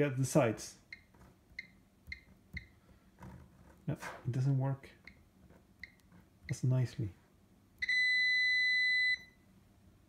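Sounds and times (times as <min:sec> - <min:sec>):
multimeter continuity beep: 0:00.9 - 0:02.7, 0:05.8 - 0:06.6, 0:07.8 - 0:09.4.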